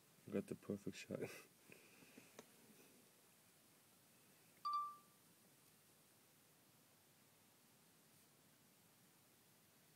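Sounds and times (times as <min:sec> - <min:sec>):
short electronic beep: 0:04.7 - 0:05.1.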